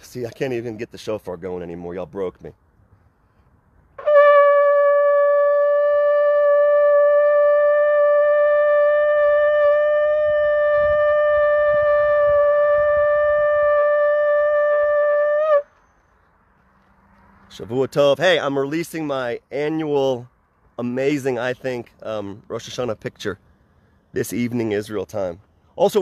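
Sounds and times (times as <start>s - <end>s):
shofar long note: 4.0s - 15.7s.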